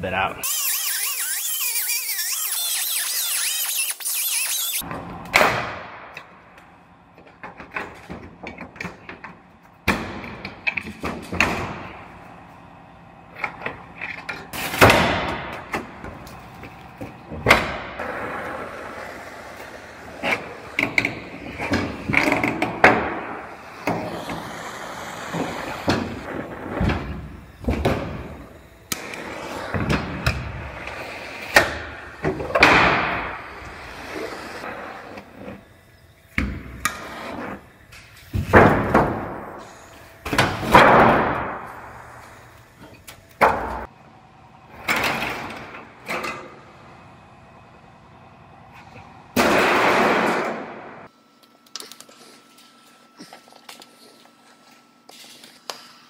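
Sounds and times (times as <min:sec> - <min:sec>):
cordless drill bursts: 0:00.4 - 0:04.8
gas torch hissing: 0:23.4 - 0:26.3.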